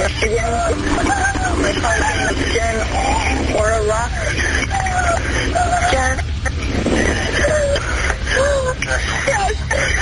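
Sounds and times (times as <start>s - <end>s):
high voice on phone call: 0.0s - 6.3s
road traffic rumble: 0.0s - 10.0s.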